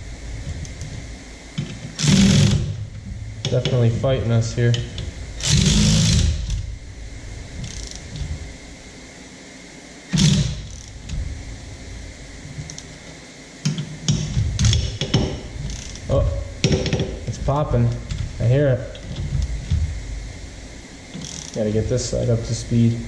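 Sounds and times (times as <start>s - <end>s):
electric ratchet running in bursts: 2.0s - 2.9s, 5.4s - 6.7s, 7.6s - 8.4s, 10.1s - 11.1s, 14.1s - 19.8s, 21.2s - 21.8s.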